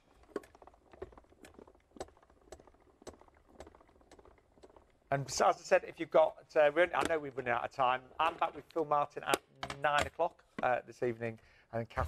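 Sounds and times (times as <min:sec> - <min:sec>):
hand-cranked machine clicking: 0:00.0 - 0:10.7.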